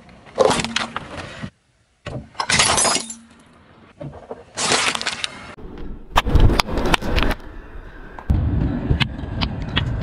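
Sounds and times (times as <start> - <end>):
shattering crunch: 4.6 - 5.4.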